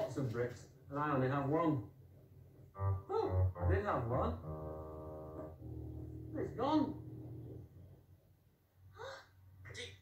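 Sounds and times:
low steady hum: 2.1s - 10.0s.

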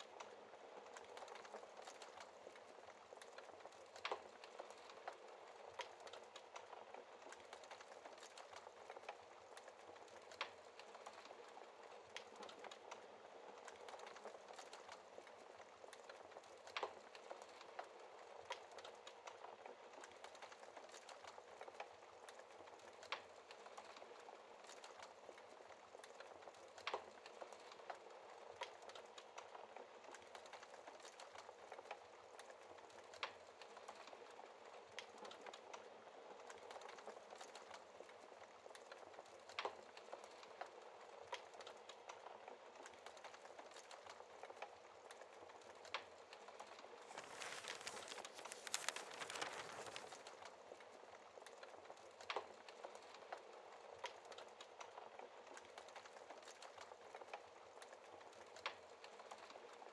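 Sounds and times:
wood fire crackling: 0.0s - 59.9s.

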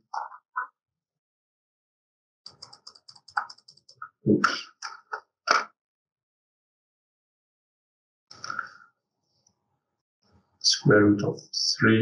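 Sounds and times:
computer keyboard typing: 2.5s - 4.1s.

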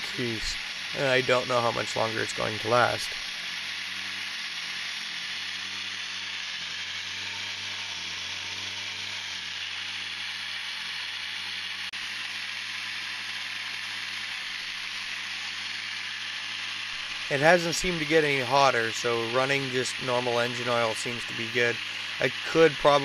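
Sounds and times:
supercharger spinning with rushing hiss: 0.0s - 23.0s.

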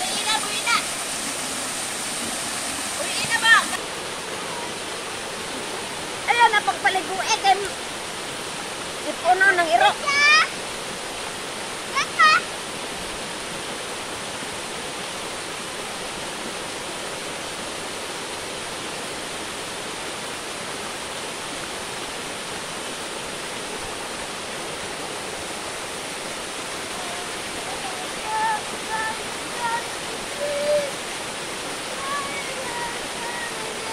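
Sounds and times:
small waterfall rushing over rocks: 0.0s - 33.9s.

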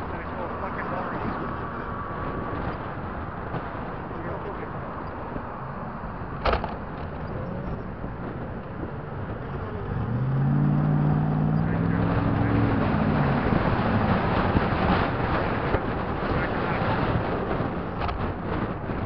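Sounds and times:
road and wind noise inside car: 0.0s - 19.0s
passing truck engine drone: 7.5s - 16.3s.

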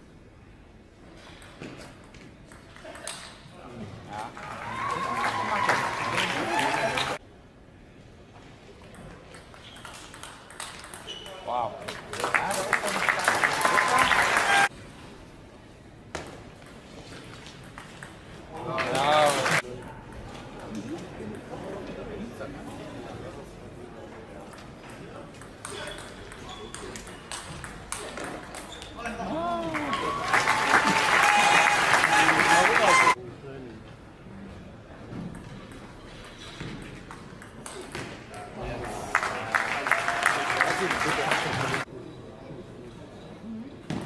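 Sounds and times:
crowd shouting and applauding: 4.2s - 7.2s, 12.1s - 14.7s, 29.3s - 33.2s, 38.8s - 41.9s.

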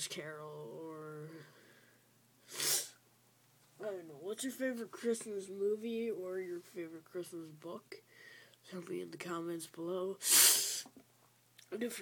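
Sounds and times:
sharp burst of breath: 1.6s - 3.0s, 10.2s - 10.9s.

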